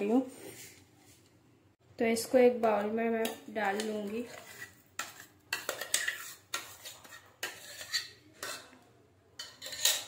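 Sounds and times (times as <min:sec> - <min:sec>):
spoon scraping steel jar: 0:03.6 - 0:08.8, 0:09.4 - 0:10.0.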